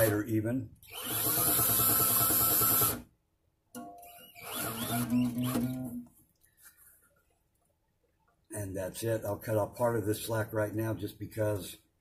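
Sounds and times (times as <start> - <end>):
drill spinning tuning key: 4.3 - 5.7.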